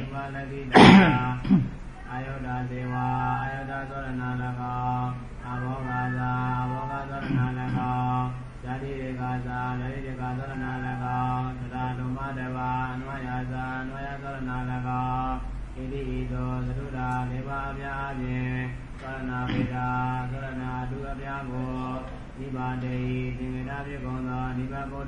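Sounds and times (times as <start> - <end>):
man chanting in monotone: 0.0 - 25.0.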